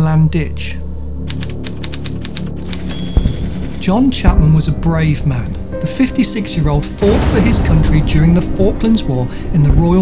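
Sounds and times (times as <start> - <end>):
typewriter keys clacking: 1.3 - 3.9
typewriter bell ring: 2.7 - 3.8.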